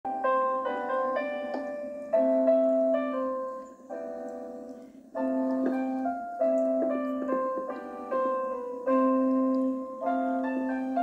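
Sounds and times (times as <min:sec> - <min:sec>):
slow gentle piano chords: 0:00.1 - 0:11.0.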